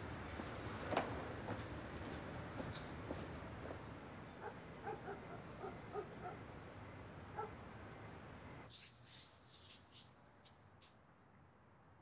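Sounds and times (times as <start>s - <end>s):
faint low street rumble: 0.0s - 12.0s.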